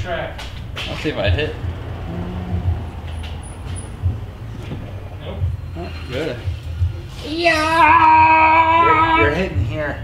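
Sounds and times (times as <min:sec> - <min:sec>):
low machine hum: 0:01.2 - 0:07.1.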